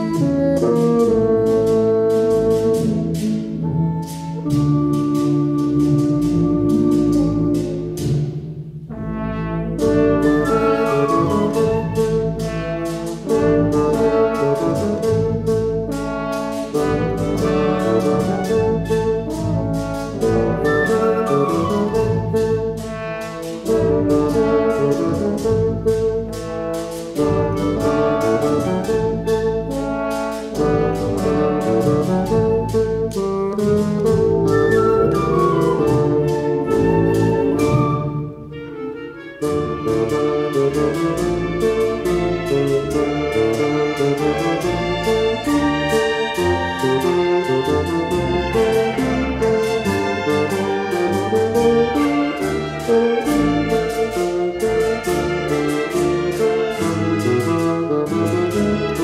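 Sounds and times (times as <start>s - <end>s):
wind band playing dance music: 0.0s - 59.0s.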